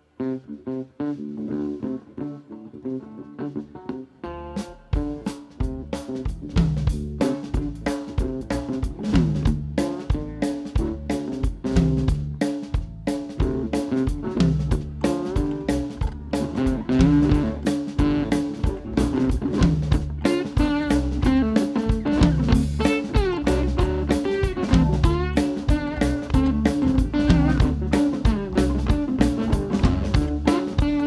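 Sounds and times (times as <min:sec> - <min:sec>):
electric guitar lead: 0:00.0 - 0:31.0
drum kit steady beat: 0:04.6 - 0:31.0.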